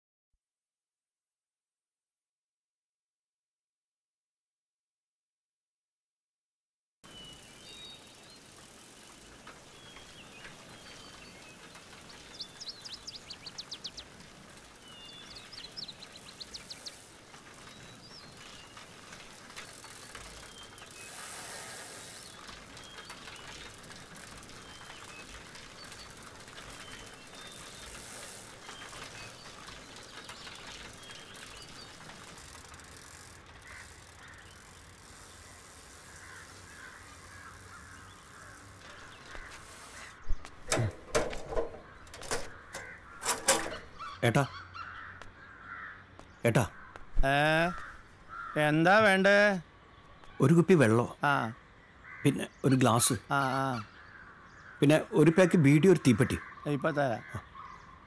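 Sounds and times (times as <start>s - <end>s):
small birds chirping: 7.0s - 58.0s
rapid bird trilling: 19.7s - 41.2s, 42.0s - 46.0s.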